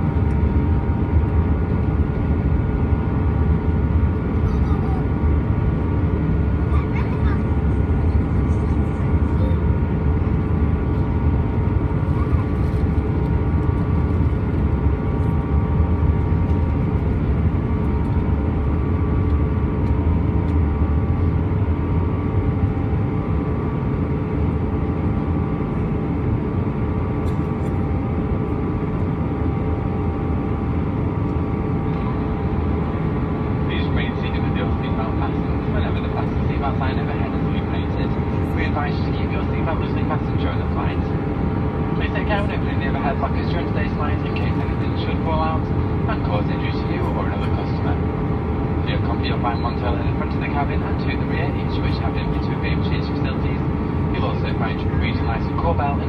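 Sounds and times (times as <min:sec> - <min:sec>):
aircraft cabin engine rumble: 0:00.0 - 0:56.0
steady engine tones: 0:00.0 - 0:56.0
cabin announcement: 0:31.9 - 0:56.0.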